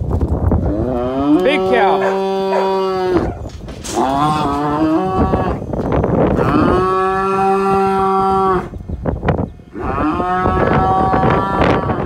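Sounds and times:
cow mooing: 0.6s - 5.7s, 6.3s - 8.8s, 9.7s - 12.0s.

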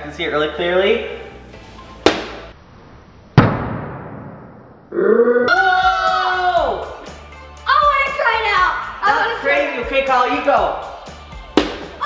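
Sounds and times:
ball hitting wall: 2.0s - 2.5s, 11.5s - 12.0s.

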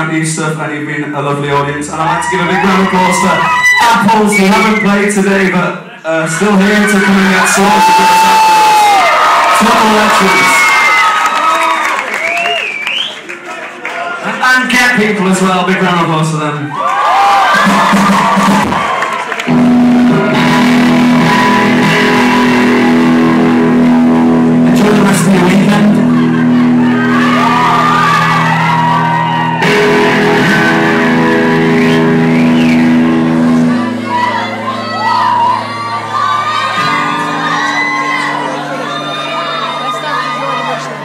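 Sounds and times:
crowd shouting and whooping: 1.9s - 5.1s, 6.1s - 14.4s, 16.6s - 41.0s
live rock band playing: 1.9s - 5.6s, 17.4s - 41.0s.

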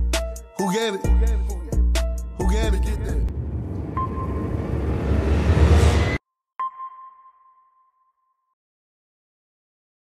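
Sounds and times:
bass-heavy logo music: 1.1s - 6.2s
rising whoosh: 3.2s - 6.2s.

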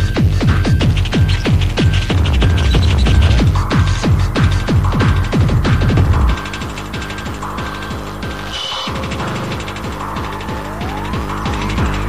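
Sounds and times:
heavy kick drum: 0.0s - 12.0s
dance music: 0.1s - 12.0s
mechanical ticking texture: 0.6s - 12.0s
falling-pitch blips: 1.3s - 6.4s, 8.3s - 12.0s.

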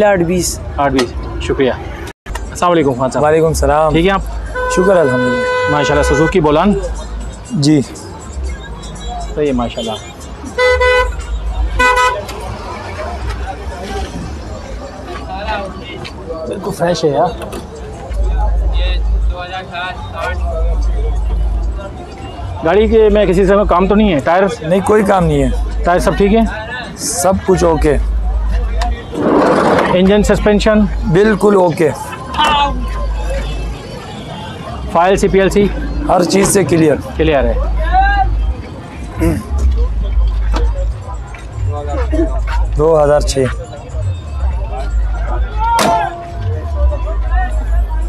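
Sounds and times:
market hubbub: 0.0s - 48.0s
vehicle horn honking: 4.5s - 6.5s, 9.7s - 12.3s.

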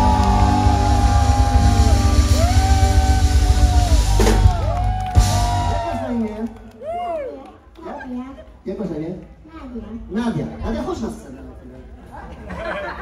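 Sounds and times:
steady beat: 0.0s - 6.0s.

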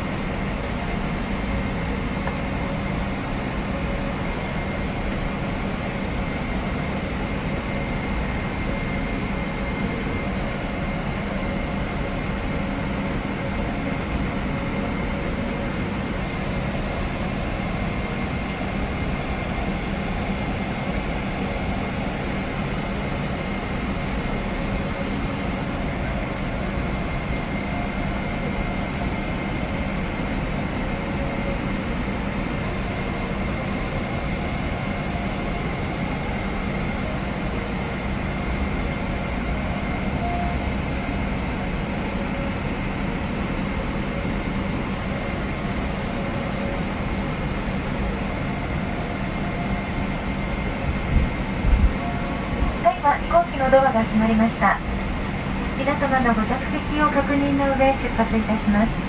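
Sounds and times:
cabin air conditioning rush: 40.6s - 59.0s.

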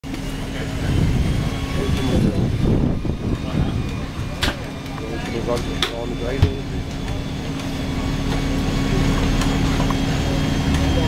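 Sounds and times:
bike trainer hum: 0.0s - 11.0s.

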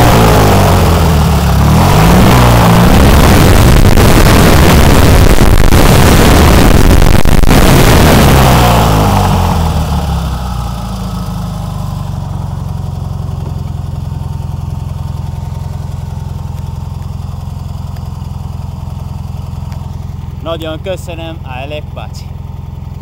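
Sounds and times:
car engine revving and idling: 0.0s - 23.0s.

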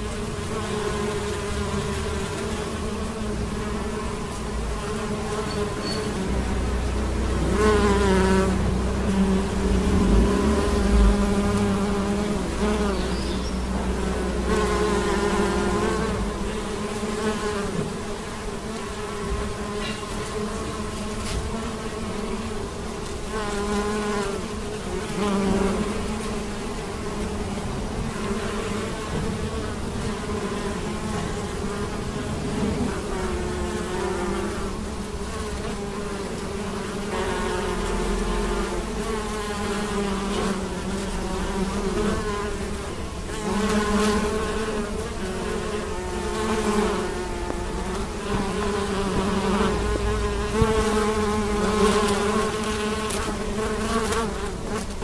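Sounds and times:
bees buzzing: 0.0s - 55.0s.

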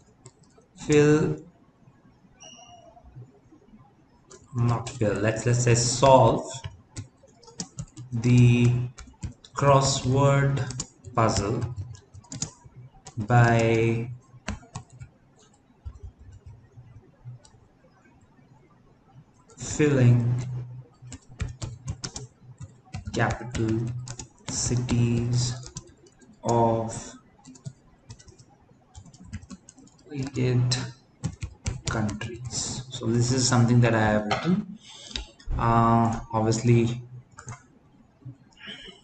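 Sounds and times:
computer keyboard keystrokes: 0.0s - 0.6s, 4.3s - 17.6s, 19.4s - 32.9s, 35.1s - 37.6s.

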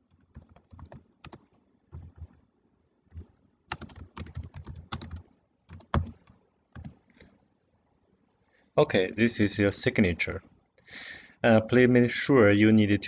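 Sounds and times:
typing on computer keyboard: 0.1s - 2.4s, 3.1s - 7.0s.

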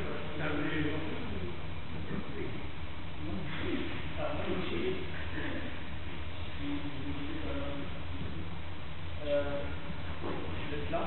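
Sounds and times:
low hum of a large hall: 0.0s - 11.0s.

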